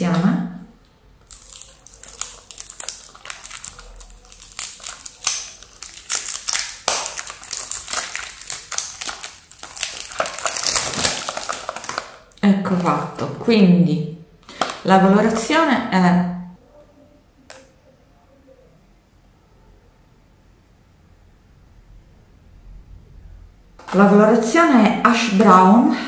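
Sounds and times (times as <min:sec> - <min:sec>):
cellophane crinkling and tearing: 0:01.2 - 0:13.4.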